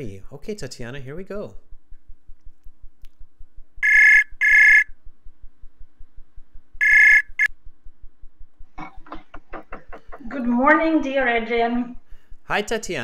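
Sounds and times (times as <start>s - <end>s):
electronic two-tone ringtone: 3.8s - 4.9s, 6.8s - 7.5s.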